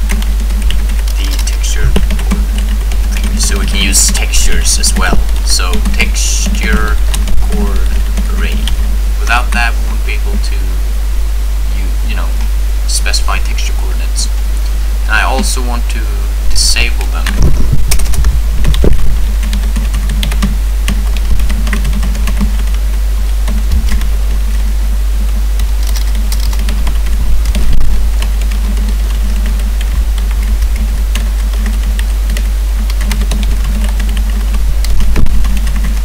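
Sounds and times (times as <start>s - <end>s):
computer keyboard typing: 0.0s - 8.8s, 19.4s - 22.8s, 25.6s - 27.6s, 28.4s - 36.0s
steady low hum: 0.0s - 36.0s.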